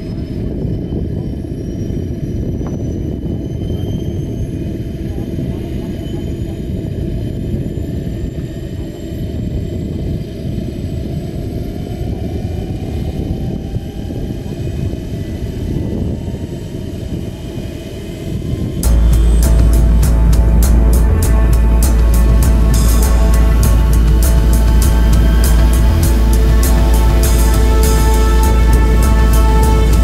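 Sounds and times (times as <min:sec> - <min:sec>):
faint high whines: 0:11.6 - 0:30.0
music: 0:18.8 - 0:30.0.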